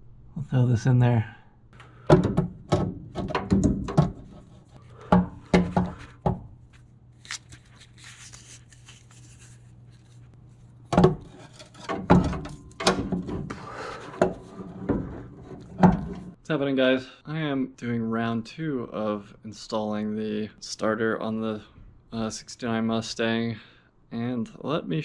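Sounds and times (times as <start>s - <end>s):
metal clunks and knocks: 2.0s - 6.5s, 10.9s - 16.4s.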